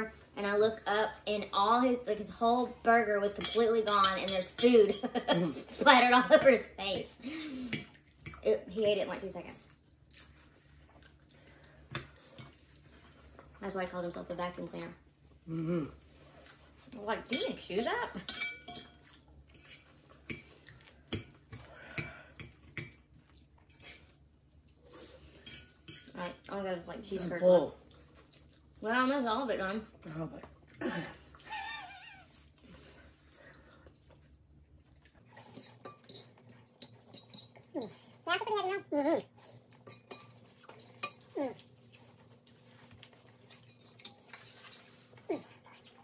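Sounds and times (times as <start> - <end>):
forks clinking on ceramic plates: 3.3 - 5.5, 17.3 - 20.4, 35.4 - 37.8, 39.8 - 41.6, 43.4 - 45.0.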